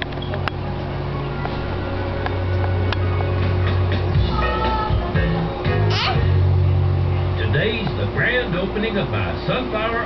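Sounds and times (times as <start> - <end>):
television music: 0.0 - 10.0.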